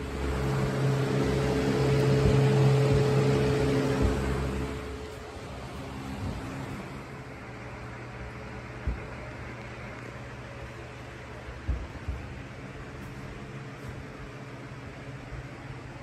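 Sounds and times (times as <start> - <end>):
box fan running: 0.0 - 16.0.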